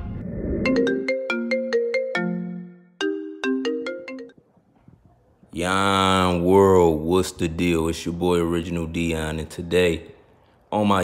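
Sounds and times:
phone ringtone plucked melody: 0.7s - 4.4s.

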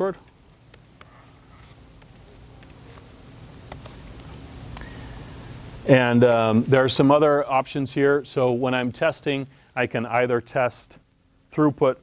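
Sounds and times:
low room hum: 0.0s - 12.0s
laptop keys clicking: 0.3s - 1.2s, 2.0s - 4.4s.

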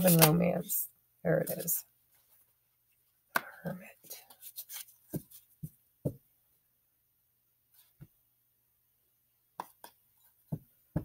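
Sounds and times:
cards shuffled by hand: 0.0s - 0.4s, 4.2s - 5.5s.

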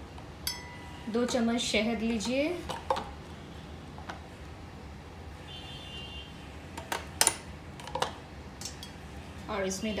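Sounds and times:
spoon clinking on glass jar: 0.4s - 0.8s.

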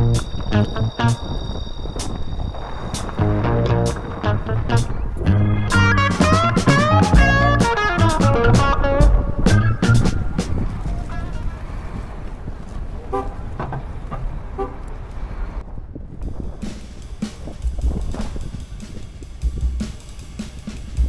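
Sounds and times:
street traffic: 0.0s - 21.0s
background music with drums: 5.7s - 10.6s, 16.3s - 21.0s
car horn honks: 10.8s - 11.8s, 13.1s - 13.6s, 14.5s - 14.9s.

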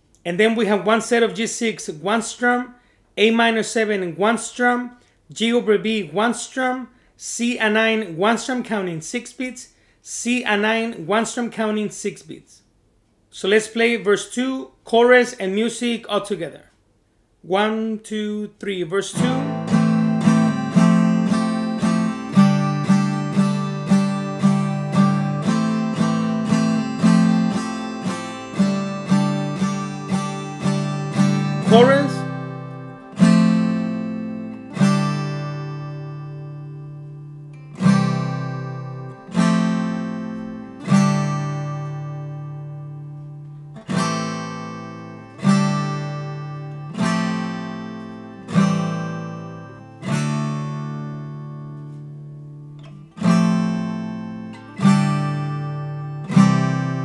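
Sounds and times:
acoustic guitar strumming: 19.0s - 57.0s.

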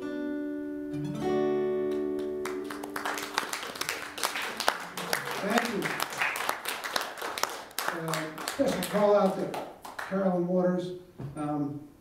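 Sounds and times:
audience applause: 2.4s - 10.1s
man talking: 5.1s - 6.2s, 7.8s - 11.9s.

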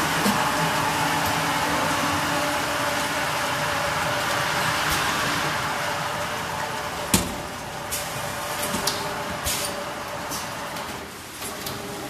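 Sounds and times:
filling machine humming: 0.0s - 10.4s.

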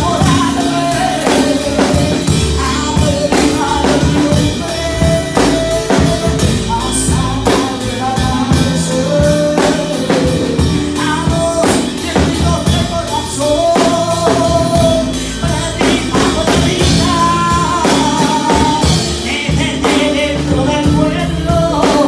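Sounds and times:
drum kit beat: 0.0s - 22.0s
woman singing into microphone: 0.0s - 22.0s.

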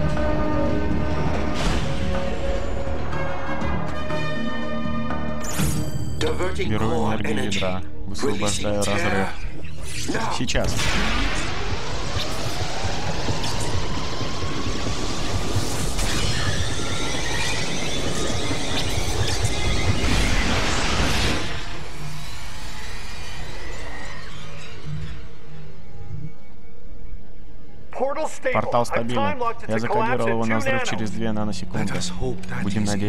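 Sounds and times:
crackling energy surges: 10.6s - 25.2s
rising energy whine: 10.7s - 26.7s.

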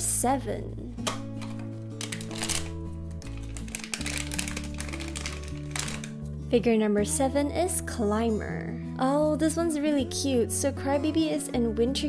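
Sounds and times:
background music of held notes: 0.0s - 12.0s
foil bag crinkling: 1.9s - 6.2s
foil bag tearing: 2.0s - 6.2s.

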